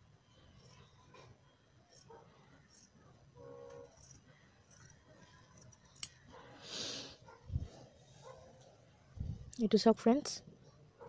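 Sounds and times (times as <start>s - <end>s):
scissors cutting fabric: 0.5s - 6.3s
scissors click: 5.6s - 6.2s.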